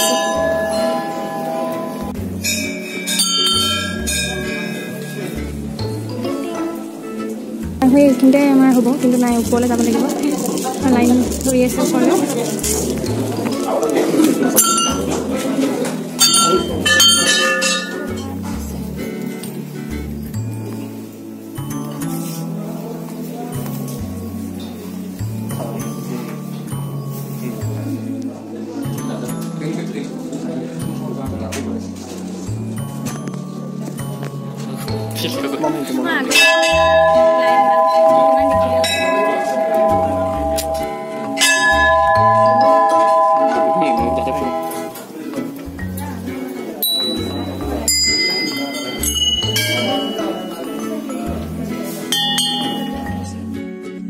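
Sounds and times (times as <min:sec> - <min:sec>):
brass bell ringing: 0:00.0 - 0:05.4, 0:16.2 - 0:18.1, 0:35.1 - 0:45.0, 0:46.9 - 0:51.1, 0:52.1 - 0:53.3
chatter of voices: 0:00.0 - 0:54.0.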